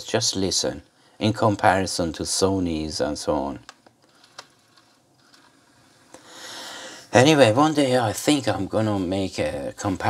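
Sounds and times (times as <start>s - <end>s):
soft rustling hiss of handling: 3.4s - 7.2s.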